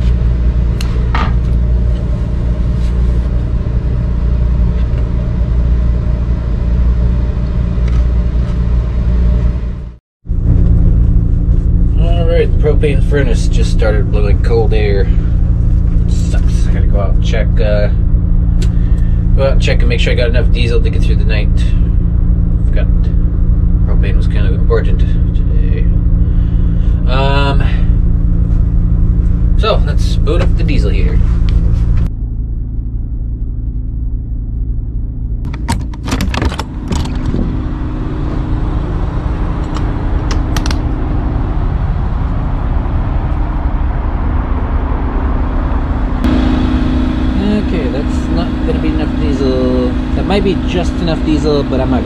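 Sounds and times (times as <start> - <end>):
steady low rumble: 0.0 - 52.0
sharp clicks and knocks: 32.0 - 37.4, 39.6 - 40.8
furnace blower humming: 44.9 - 52.0.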